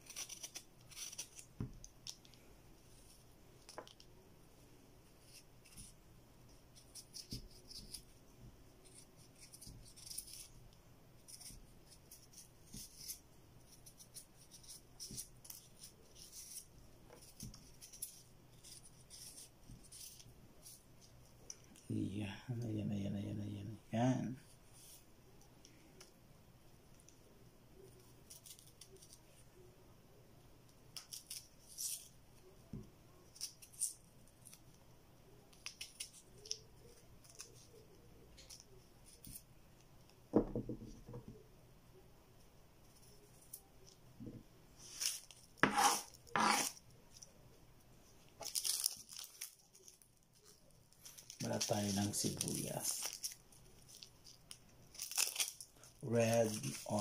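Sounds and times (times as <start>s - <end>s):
knife scraping ginger skin: 0.0s - 2.3s, 6.7s - 8.1s, 8.8s - 10.6s, 11.2s - 20.8s, 44.8s - 46.8s
onion skin crackling: 0.0s - 4.1s, 8.8s - 10.6s, 30.9s - 32.5s, 35.5s - 39.4s, 48.3s - 57.0s
dull knock on wooden table: 40.3s - 41.3s.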